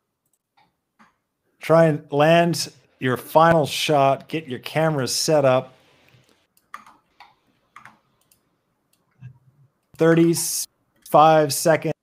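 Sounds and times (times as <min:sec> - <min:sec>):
computer clicking: 0:00.2 - 0:01.2, 0:06.5 - 0:11.1.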